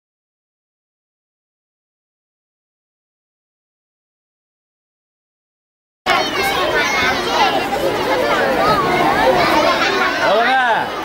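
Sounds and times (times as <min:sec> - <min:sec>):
children chattering and calling out: 0:06.1 - 0:11.0.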